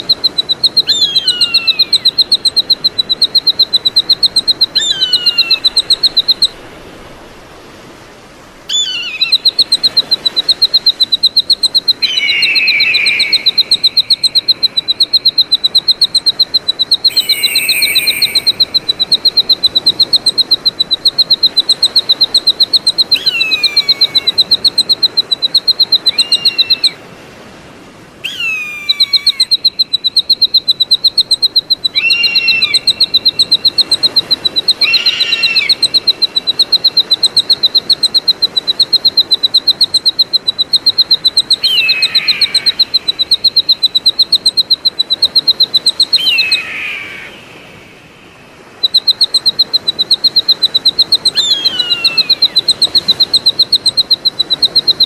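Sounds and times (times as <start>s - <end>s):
eagle whistled calls: 0.0s - 6.6s, 8.7s - 27.0s, 28.2s - 47.8s, 48.7s - 55.0s.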